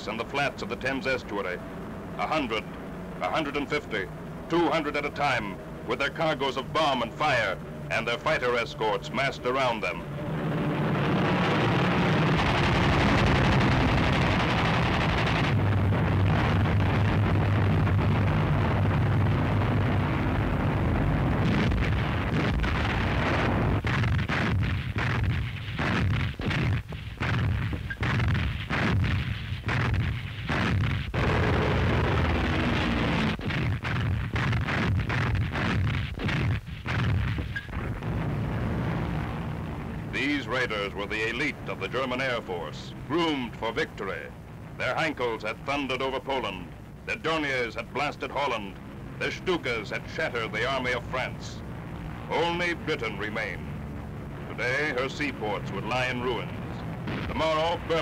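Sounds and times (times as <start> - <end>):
aircraft engines droning: 0.0 - 23.8, 37.4 - 58.0
gunfire-like cracks and bangs: 21.6 - 31.8, 33.3 - 37.6.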